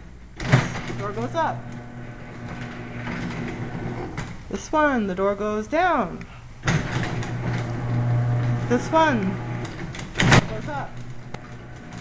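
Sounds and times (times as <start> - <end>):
garage door opener motor hum: 0.0 - 4.5, 6.5 - 12.0.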